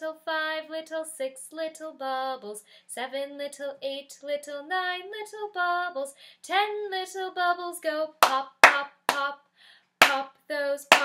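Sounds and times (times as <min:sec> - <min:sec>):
woman singing: 0:00.0 - 0:09.4, 0:10.0 - 0:11.0
hand claps: 0:08.2 - 0:09.3, 0:10.0 - 0:10.3.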